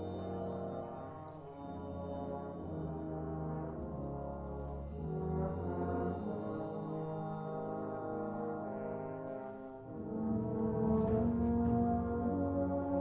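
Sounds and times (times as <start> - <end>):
wind band brass chords: 0.0 - 13.0.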